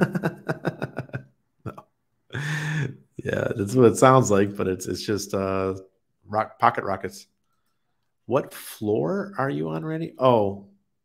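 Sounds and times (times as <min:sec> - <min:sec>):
man laughing: 0:00.0 - 0:01.8, 0:02.4 - 0:04.1.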